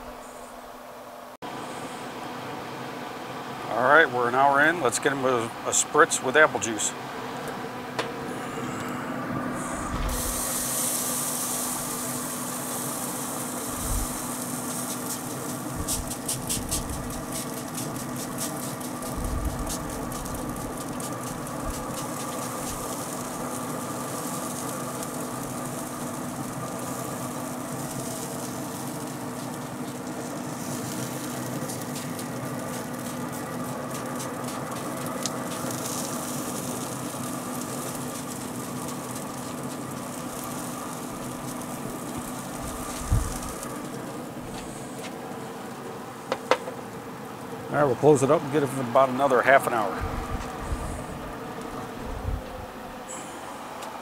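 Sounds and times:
pellet grill humming: 0.0s - 54.0s.

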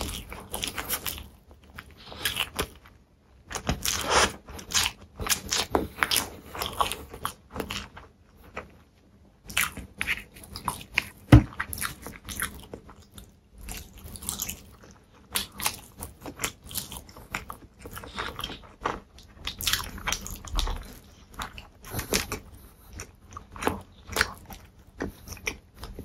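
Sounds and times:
wet chewing clicks: 9.4s - 26.0s.

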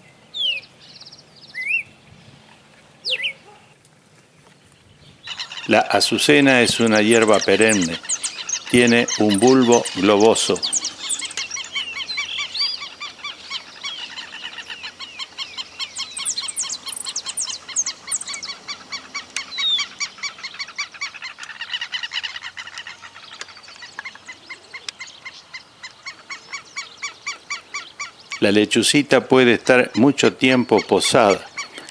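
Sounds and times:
many birds calling: 0.0s - 31.9s.

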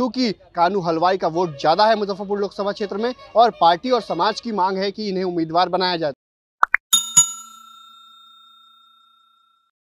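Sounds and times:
bell chime: 6.9s - 9.7s.

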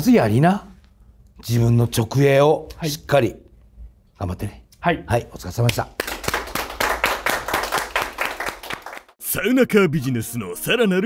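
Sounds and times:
people applauding: 5.7s - 9.2s.

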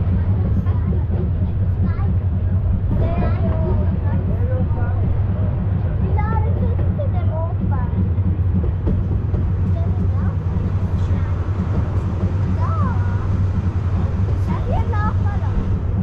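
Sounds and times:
passengers' voices: 0.0s - 16.0s
rack railway train rumbling: 0.0s - 16.0s.

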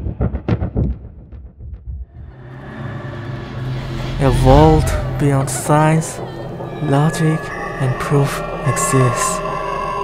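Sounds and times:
low soundtrack drone: 2.0s - 10.0s.

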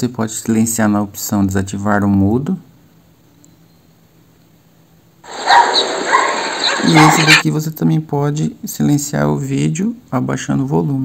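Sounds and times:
short high-pitched calls: 5.3s - 7.4s
steady noisy wash: 5.3s - 7.4s.

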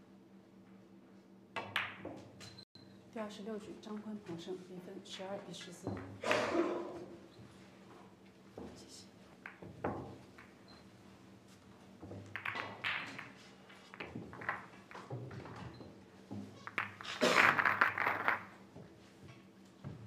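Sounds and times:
pool balls clacking: 9.4s - 10.7s, 12.0s - 18.8s.

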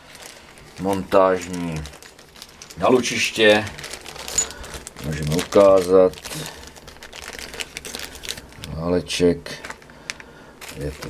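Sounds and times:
plastic zip bag crinkling: 0.0s - 11.0s.

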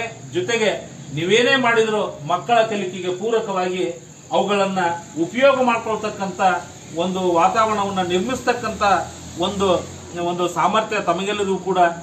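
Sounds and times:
man speaking: 0.0s - 12.0s
steady high-pitched hiss: 0.0s - 12.0s.

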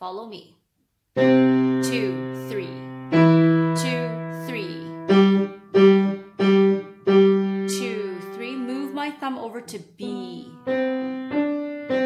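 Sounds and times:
piano notes played slowly: 1.2s - 9.0s, 10.1s - 12.0s.

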